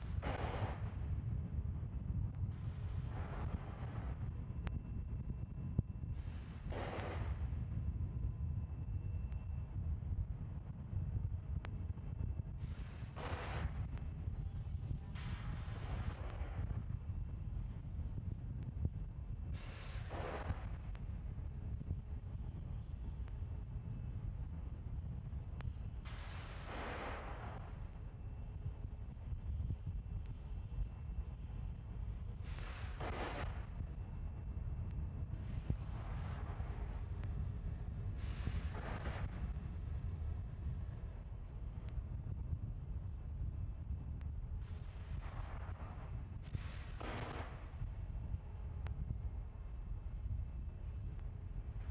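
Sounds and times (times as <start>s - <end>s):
wind rumbling on microphone: 0.0s - 51.9s.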